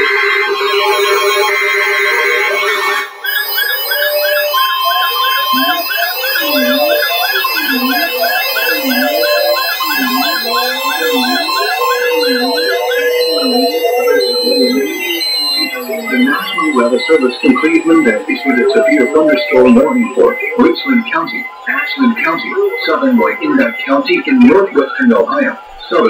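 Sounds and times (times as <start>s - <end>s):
warbling alarm sirens: 0.0s - 26.0s
short high beeps: 3.2s - 24.1s
fast high chirp: 3.2s - 26.0s.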